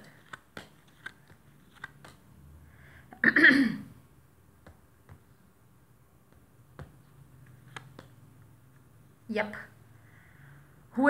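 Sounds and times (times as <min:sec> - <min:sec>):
cards clicking and tapping: 0:00.0 - 0:02.4, 0:04.6 - 0:05.4, 0:06.2 - 0:08.9
person clearing throat: 0:03.1 - 0:04.0.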